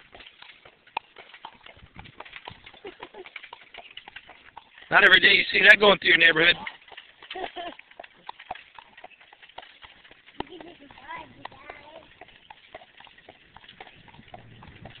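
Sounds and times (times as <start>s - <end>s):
horse hooves clip-clopping: 0.0s - 15.0s.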